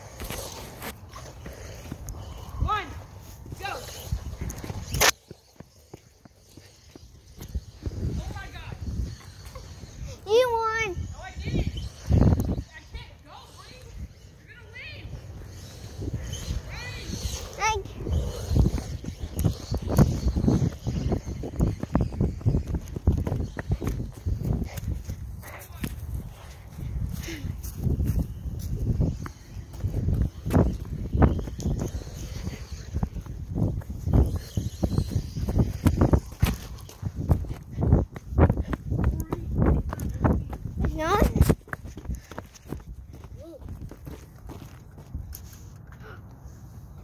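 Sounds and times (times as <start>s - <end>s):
footsteps: 0.0s - 14.2s, 15.0s - 46.0s.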